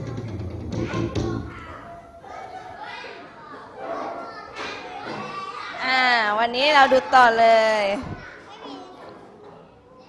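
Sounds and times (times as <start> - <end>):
children's voices chattering: 0.6 - 10.0.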